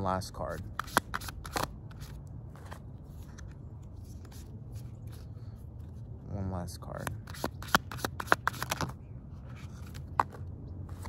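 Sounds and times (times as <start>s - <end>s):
cards shuffled by hand: 0.5s - 6.0s, 7.0s - 11.0s.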